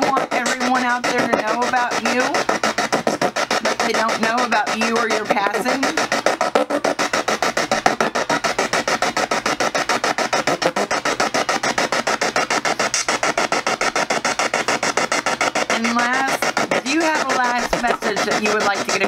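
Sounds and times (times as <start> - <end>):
rapid chopping radio static: 0.0 - 9.2, 12.6 - 19.0.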